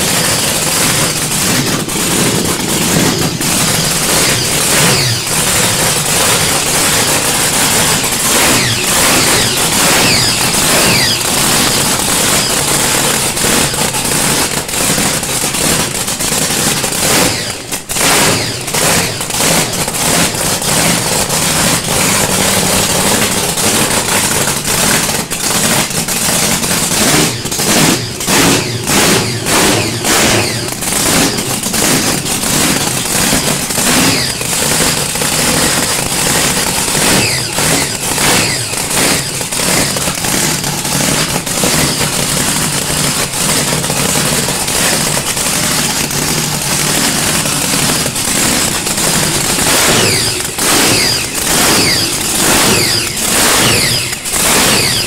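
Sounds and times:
drag car engine crackling: 0:00.0 - 0:55.0
engine throttle blips: 0:00.0 - 0:55.0.

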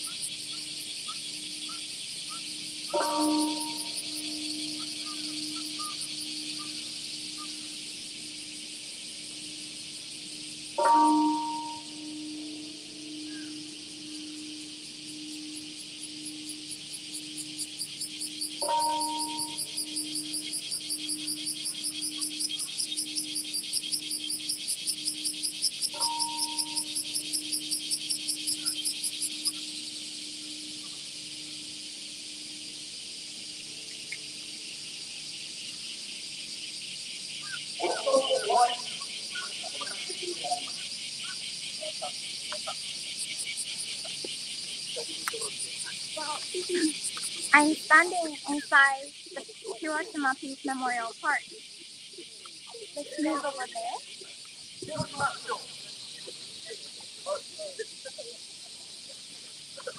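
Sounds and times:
cicada buzzing: 0:00.0 - 0:59.9.

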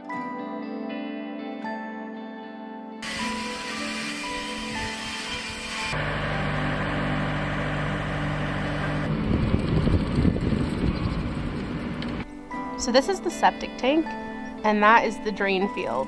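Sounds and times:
truck engine rumbling: 0:05.9 - 0:12.3
background music: 0:12.2 - 0:16.0.

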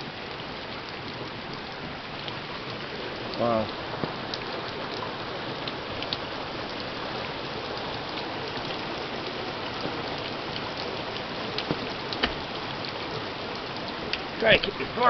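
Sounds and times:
heavy rain pouring: 0:00.0 - 0:15.0.

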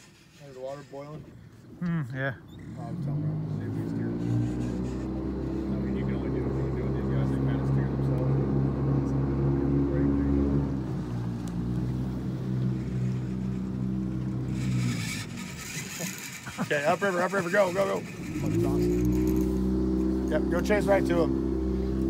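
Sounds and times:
boat motor running: 0:00.0 - 0:22.0.

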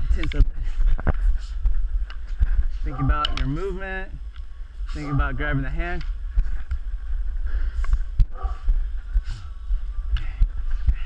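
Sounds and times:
person breathing: 0:00.0 - 0:02.9, 0:06.2 - 0:11.0
camera handling rumble: 0:00.2 - 0:03.6.

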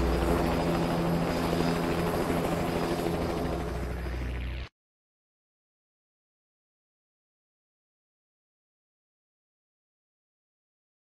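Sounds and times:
rotor hum with fast flutter: 0:00.0 - 0:04.7.

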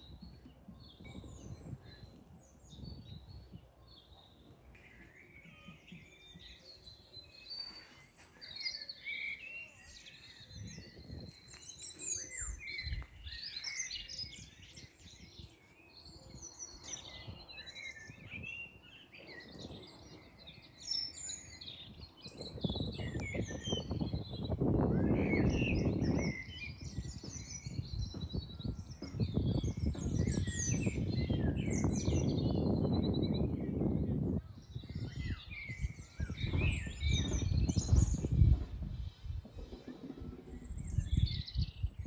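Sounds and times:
small birds chirping and trilling: 0:00.0 - 0:42.0.

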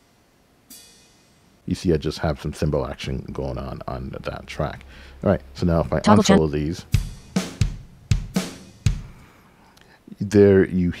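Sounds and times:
drum kit playing: 0:06.0 - 0:09.4.

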